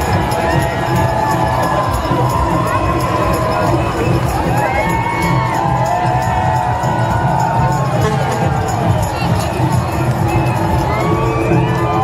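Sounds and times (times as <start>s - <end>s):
crowd cheering and shouting: 0.0s - 12.0s
music playing: 0.0s - 12.0s.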